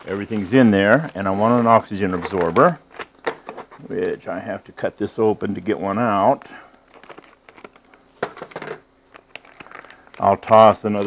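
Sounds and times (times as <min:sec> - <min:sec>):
plastic bag crinkling: 0:06.2 - 0:11.0.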